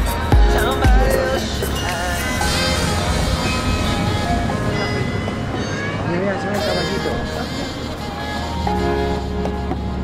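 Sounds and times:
city street noise: 0.0s - 10.0s
bells chiming a tune: 0.5s - 6.9s.

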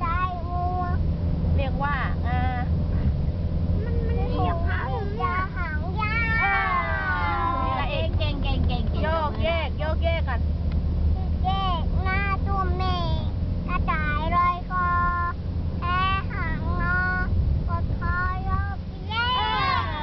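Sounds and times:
car cabin rumble: 0.0s - 20.0s.

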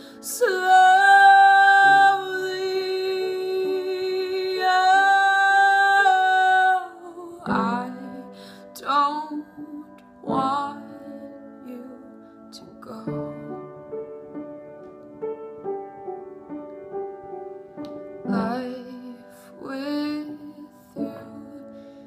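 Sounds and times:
young woman singing a ballad: 0.0s - 13.5s, 18.3s - 22.0s.

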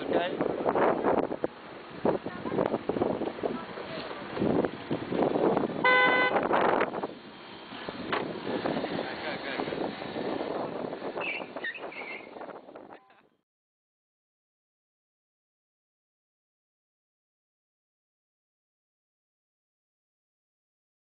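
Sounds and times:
people talking: 2.2s - 2.8s, 3.4s - 4.4s, 9.0s - 9.8s, 12.9s - 13.3s
car horn toot: 5.8s - 6.6s.

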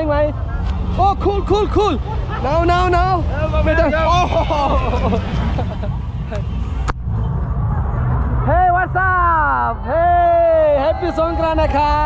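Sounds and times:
truck engines rumbling: 0.0s - 12.0s
person laughing: 1.7s - 3.2s, 3.9s - 6.4s.

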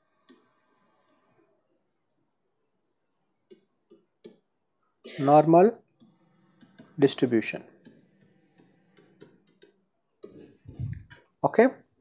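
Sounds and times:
stylus tapping on pen tablet: 3.4s - 4.5s, 6.0s - 7.0s, 7.8s - 11.0s
person speaking: 5.1s - 5.8s, 10.7s - 11.9s.

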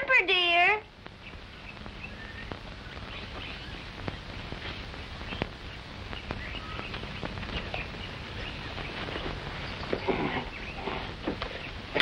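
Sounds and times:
birds chirping: 0.0s - 12.0s
film soundtrack hiss: 0.0s - 12.0s.

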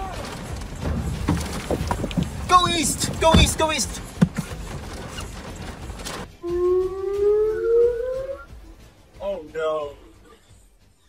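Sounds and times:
warning siren rising in pitch: 6.4s - 8.7s.

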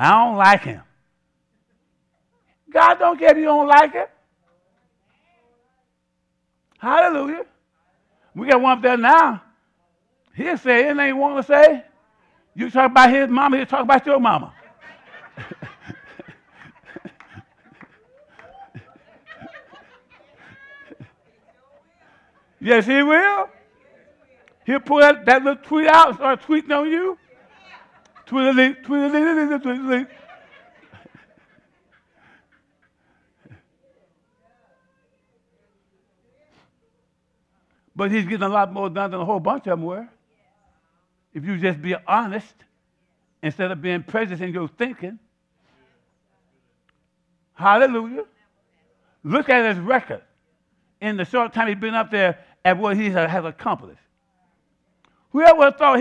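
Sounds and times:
low electrical hum: 0.0s - 56.0s
breathy laughter: 14.5s - 22.6s, 29.0s - 33.8s.

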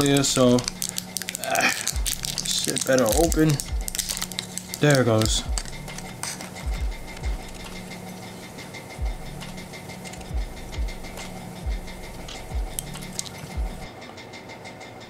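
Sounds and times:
plastic parts clicking: 0.0s - 7.8s
low hum: 0.0s - 15.0s.

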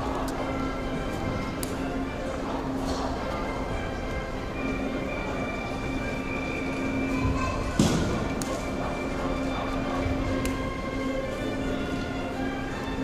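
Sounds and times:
instrumental music with held notes: 0.0s - 13.0s.

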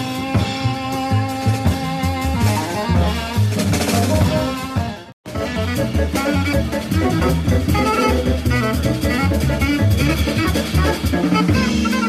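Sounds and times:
alto saxophone lead: 0.0s - 12.0s
double bass: 0.0s - 12.0s
drum kit with cymbals: 0.0s - 12.0s
piano: 0.0s - 12.0s.

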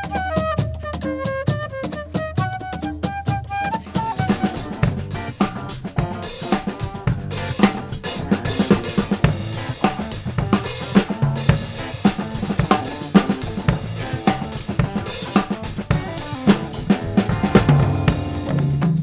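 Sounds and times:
drum kit beat: 0.0s - 19.0s
electric guitar: 0.0s - 19.0s
keyboard: 0.0s - 19.0s.

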